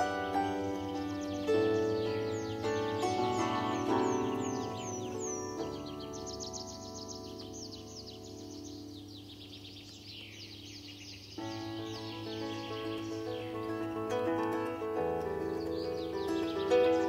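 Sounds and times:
plucked bandura strings: 0:00.0 - 0:08.6, 0:11.4 - 0:17.0
birds chirping: 0:00.0 - 0:17.0.

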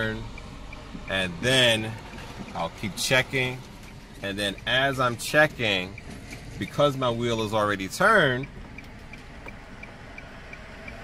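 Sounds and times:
car engine and road rumble: 0:00.0 - 0:11.0
turn signal ticking: 0:00.0 - 0:11.0.

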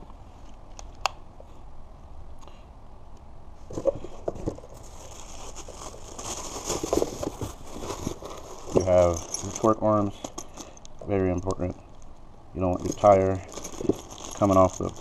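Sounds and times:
plastic bags and cardboard rustling: 0:03.6 - 0:15.0.

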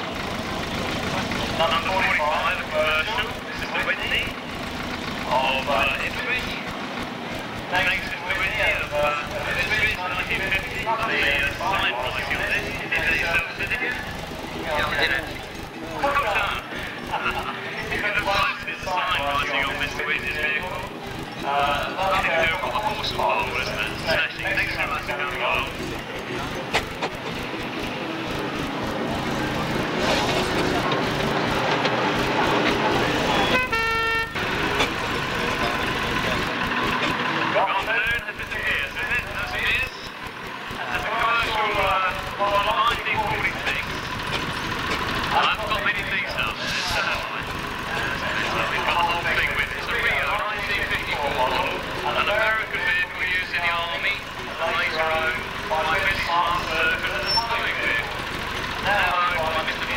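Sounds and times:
lorry engine running: 0:00.0 - 0:59.9
short horn toot: 0:33.3 - 0:34.4.

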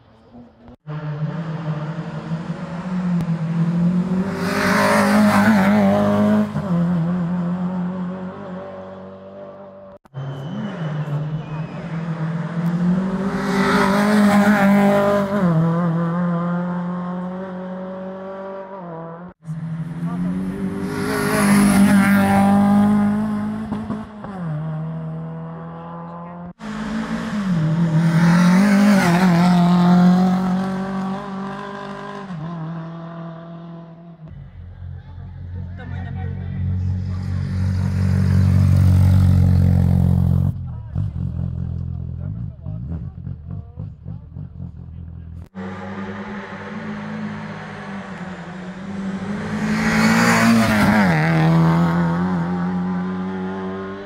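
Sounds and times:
rally cars passing at speed: 0:00.2 - 0:54.0
engines revving hard: 0:00.8 - 0:34.0, 0:45.4 - 0:54.0.

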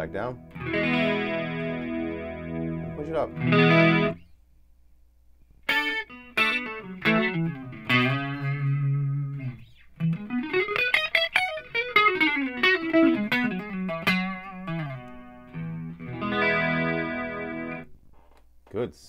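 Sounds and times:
clean electric guitar playing: 0:00.0 - 0:04.3, 0:05.7 - 0:17.9.

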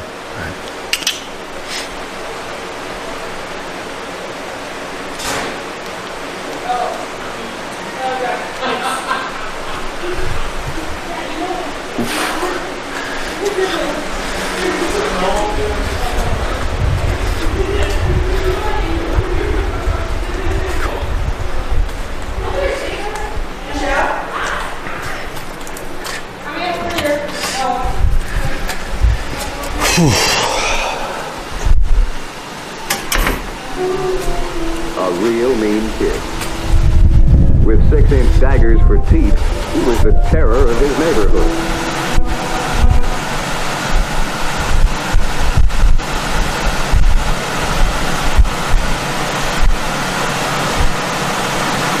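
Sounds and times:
steady rushing noise: 0:12.6 - 0:24.3, 0:33.6 - 0:52.0
low microphone thumps: 0:36.2 - 0:46.0.

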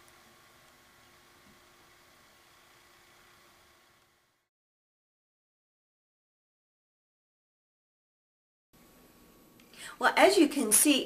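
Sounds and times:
faint electrical hum: 0:00.0 - 0:04.5, 0:08.8 - 0:11.0.

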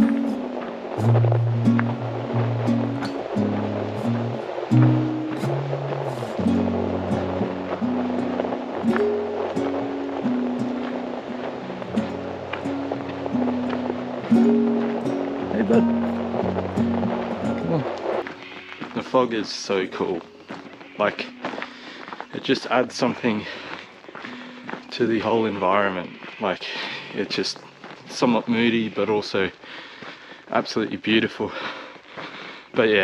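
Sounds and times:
background music with bass line: 0:00.0 - 0:10.8.

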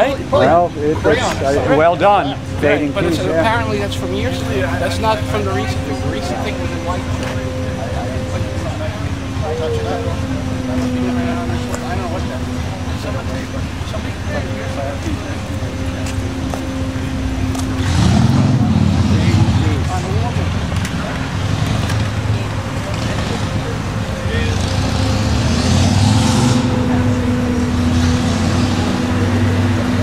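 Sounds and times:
steady engine hum: 0:00.0 - 0:30.0
vehicles passing: 0:00.0 - 0:30.0.

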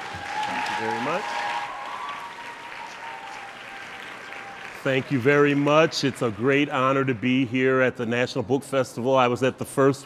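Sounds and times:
audience applauding: 0:00.0 - 0:07.7.

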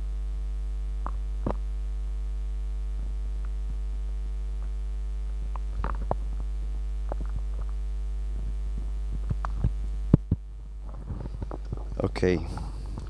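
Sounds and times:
electrical mains hum: 0:00.0 - 0:13.0
microphone handling clicks: 0:01.0 - 0:01.7, 0:04.6 - 0:13.0.

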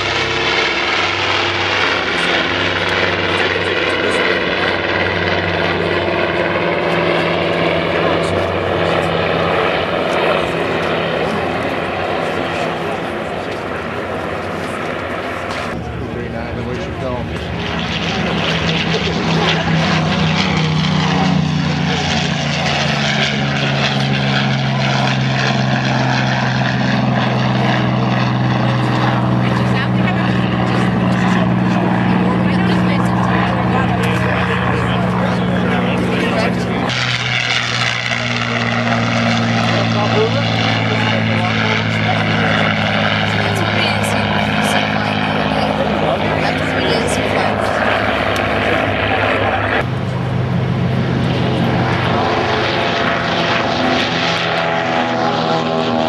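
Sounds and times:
propeller plane engine drone: 0:00.0 - 0:56.0.

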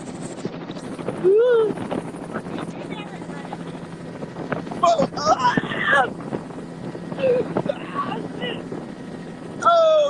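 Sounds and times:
helicopter rotor and engine: 0:00.0 - 0:10.0
person calling out: 0:09.6 - 0:10.0.

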